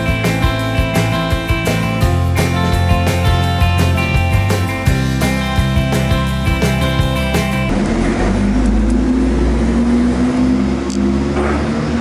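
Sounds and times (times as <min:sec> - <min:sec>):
guitar music: 0:00.0 - 0:09.3
bus engine passing: 0:05.6 - 0:12.0.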